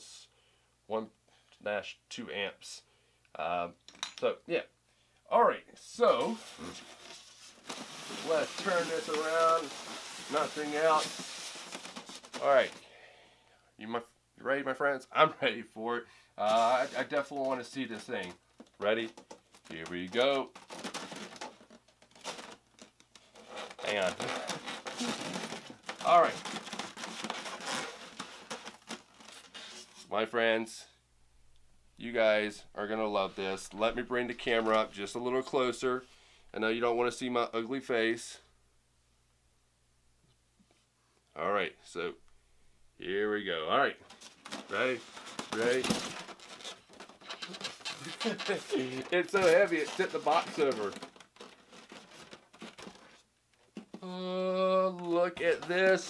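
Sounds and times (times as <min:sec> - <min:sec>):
polystyrene box rubbing and scraping: 0:06.0 - 0:12.8, 0:16.4 - 0:18.3, 0:23.2 - 0:30.1, 0:44.1 - 0:53.2.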